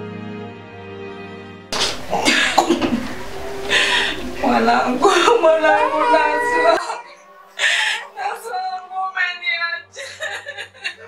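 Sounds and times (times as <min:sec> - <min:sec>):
woman coughing: 0:01.8 - 0:03.3.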